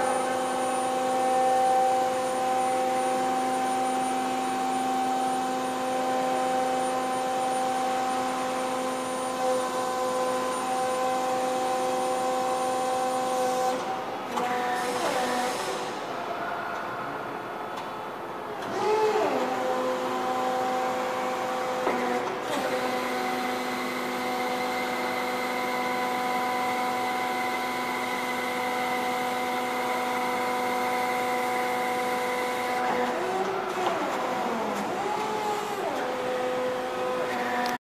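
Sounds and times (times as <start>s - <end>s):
electric forklift motor whine: 0.0s - 16.0s, 18.6s - 37.8s.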